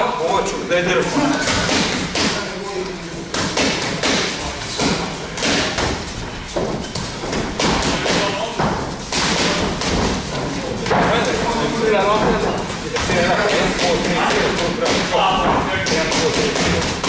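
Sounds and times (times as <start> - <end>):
boxing gloves punching pads: 1.4 - 2.4, 3.3 - 11.3, 13.0 - 17.0.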